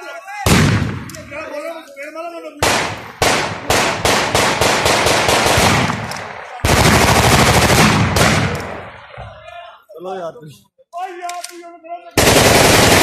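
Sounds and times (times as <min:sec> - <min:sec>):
gunshots: 0:00.4 - 0:01.3, 0:02.6 - 0:09.2, 0:12.2 - 0:13.0
automatic gunfire burst: 0:02.6 - 0:08.6, 0:12.2 - 0:13.0.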